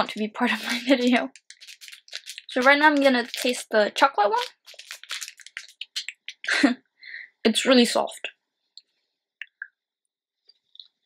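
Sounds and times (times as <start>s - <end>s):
snack wrapper crinkling: 0.6s - 6.5s.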